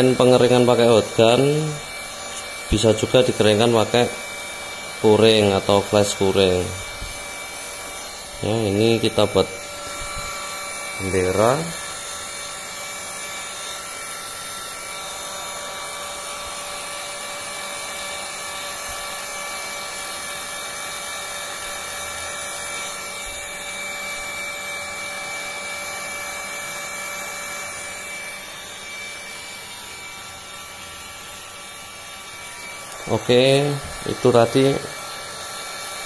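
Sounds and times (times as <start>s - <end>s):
hot air gun running: 0.0s - 36.0s.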